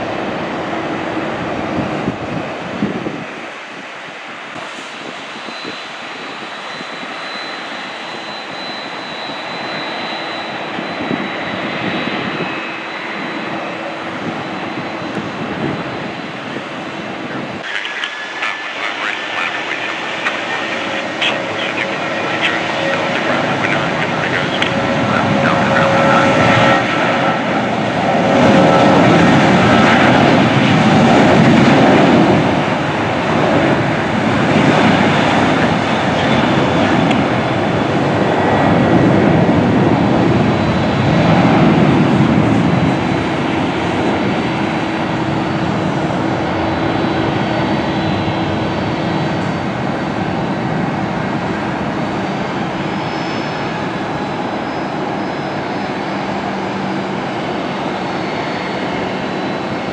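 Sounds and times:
jet engines rolling along runway: 0.0s - 59.9s
jet engines whining while taxiing: 0.0s - 59.9s.

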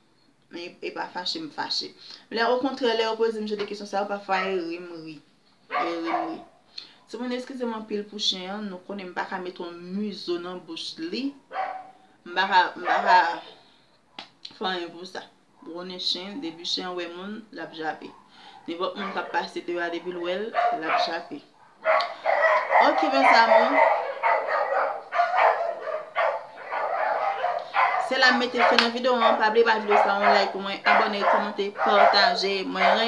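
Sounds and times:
dog barking: 5.7s - 6.6s, 11.5s - 12.0s, 12.7s - 13.6s, 18.1s - 33.0s
woman's loud unworded bursts: 22.0s - 24.1s.

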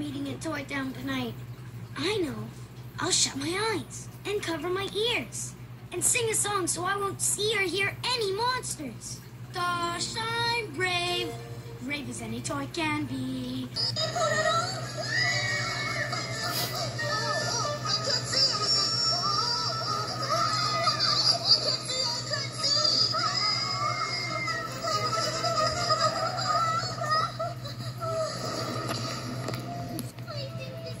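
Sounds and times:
steady low hum: 0.0s - 31.0s
cartoon music from tv speaker: 9.6s - 27.4s, 28.1s - 31.0s
childlike voice singing: 9.6s - 27.6s.

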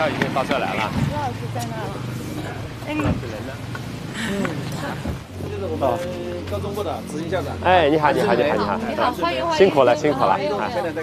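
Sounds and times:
car engine idling: 0.0s - 11.0s
distant people talking: 0.0s - 11.0s.

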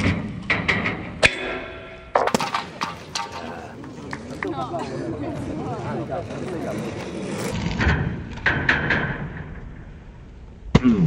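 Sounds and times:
skate wheels knocking on asphalt: 2.2s - 10.4s.

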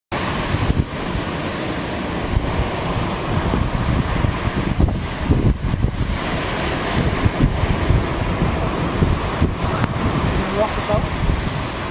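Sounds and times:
surf breaking on beach: 0.1s - 11.9s
wind buffeting microphone: 0.2s - 11.9s.

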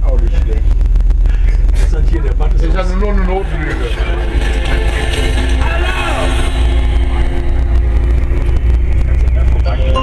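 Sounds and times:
people talking: 0.0s - 0.7s, 1.3s - 4.4s, 8.9s - 10.0s
train carriage rumble: 0.0s - 10.0s.

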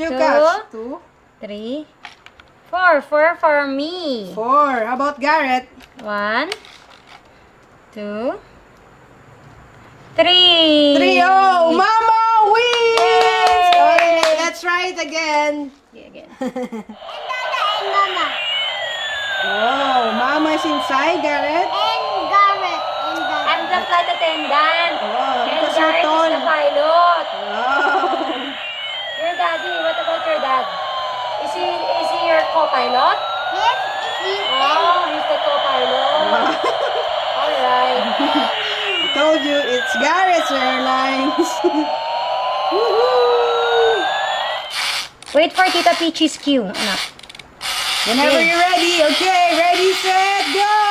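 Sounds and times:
whine falling in pitch: 17.0s - 45.0s
toy airplane jet sound effect: 17.0s - 50.9s.

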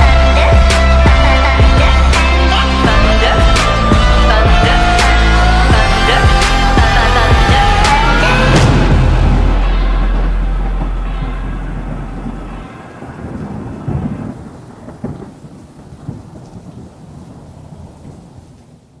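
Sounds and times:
thunder rumbling: 0.0s - 19.0s
rain hiss: 5.0s - 19.0s
sharp thunder cracks: 5.8s - 18.4s.

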